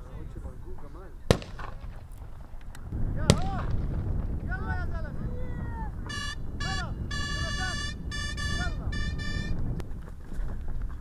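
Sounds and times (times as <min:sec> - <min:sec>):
gunshot: 0:01.3 - 0:02.4, 0:03.2 - 0:04.3.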